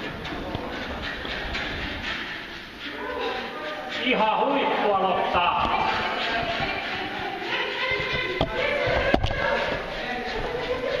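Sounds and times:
indistinct voices echoing in hall: 0:00.0 - 0:11.0.

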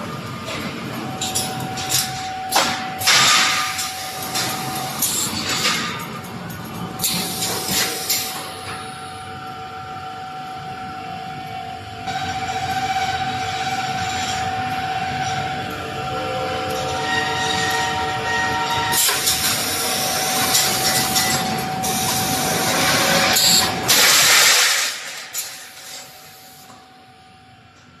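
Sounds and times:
welding machine drone and whine: 0:00.0 - 0:28.0.

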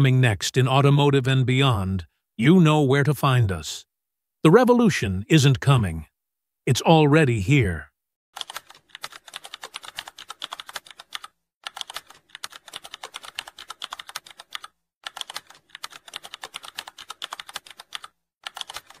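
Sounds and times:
computer keyboard typing: 0:08.4 - 0:19.0.

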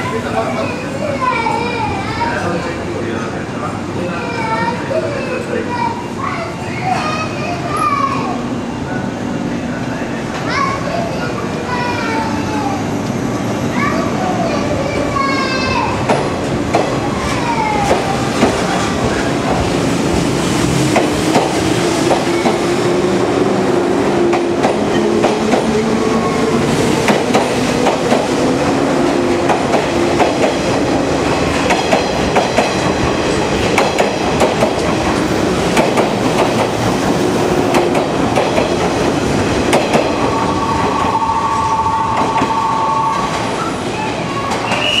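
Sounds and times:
train wheels clicking over rail joints: 0:31.5 - 0:36.9.

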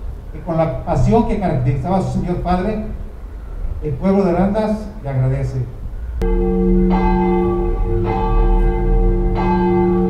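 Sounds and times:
deep church bell tolling: 0:06.2 - 0:10.0.

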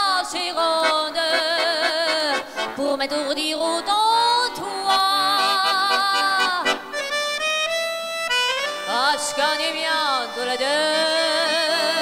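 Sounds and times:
woman singing with vibrato: 0:00.0 - 0:06.8, 0:08.8 - 0:12.0
accordion chords: 0:00.6 - 0:04.2, 0:04.8 - 0:12.0.

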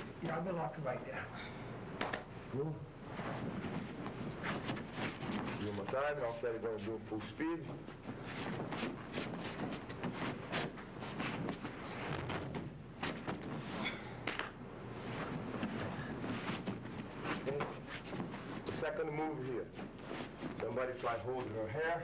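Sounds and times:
fabric rustling: 0:02.1 - 0:22.0
bodies thumping on a mat: 0:03.0 - 0:05.8, 0:07.8 - 0:18.8
shuffling feet: 0:03.0 - 0:22.0.

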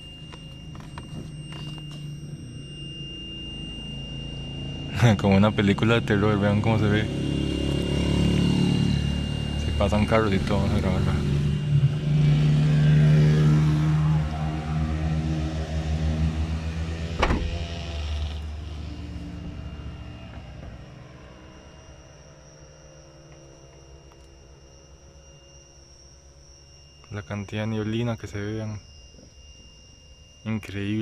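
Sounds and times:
vehicle engine passing by: 0:10.3 - 0:21.1
high insect trill: 0:17.2 - 0:31.0.

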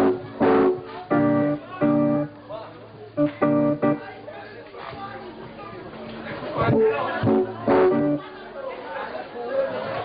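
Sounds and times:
live guitar music: 0:00.0 - 0:04.3, 0:06.4 - 0:08.4.

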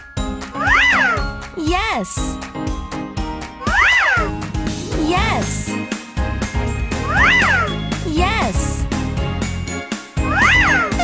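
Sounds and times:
children's background music: 0:00.0 - 0:11.0
high-pitched meow-like cry: 0:03.6 - 0:04.3.

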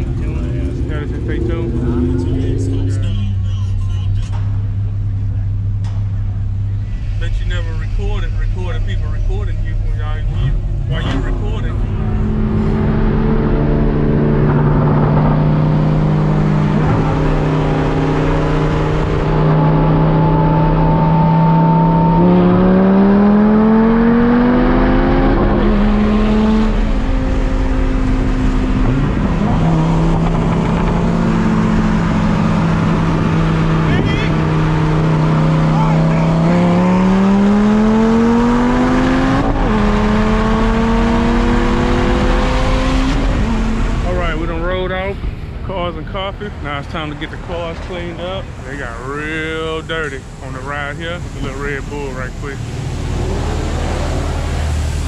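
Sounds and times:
sports car engine revving: 0:00.0 - 0:55.0.

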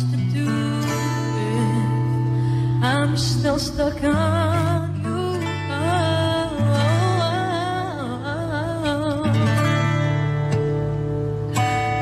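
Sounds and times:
young man singing a ballad: 0:00.0 - 0:02.1
acoustic guitar chords: 0:00.0 - 0:12.0.

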